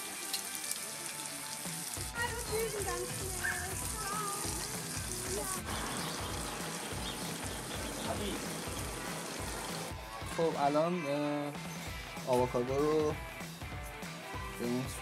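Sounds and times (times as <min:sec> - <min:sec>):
bacon sizzling in frying pan: 0:00.0 - 0:09.9
background music with beat: 0:00.1 - 0:15.0.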